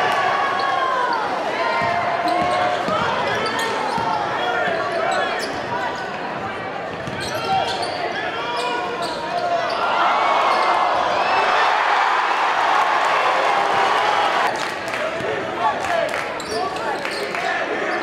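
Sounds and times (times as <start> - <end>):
basketball bouncing on wooden court: 1.8 - 4.2, 6.9 - 7.5.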